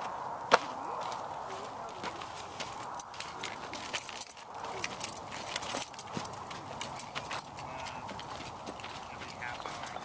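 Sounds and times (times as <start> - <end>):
footsteps on dirt path: 0.0 - 10.0
outdoor background noise: 0.0 - 10.0
light clicks and jingles: 2.0 - 10.0.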